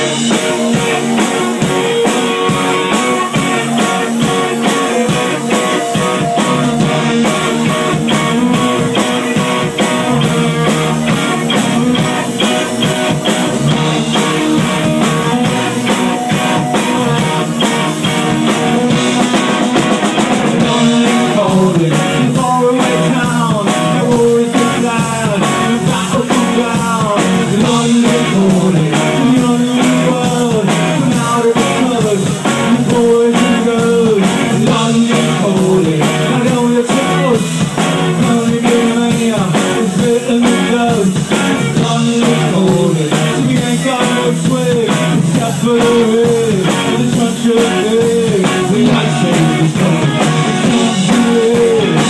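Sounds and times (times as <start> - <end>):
person singing: 0.0 - 19.6, 20.6 - 52.0
drum kit beat: 0.0 - 52.0
electric guitars: 0.0 - 52.0.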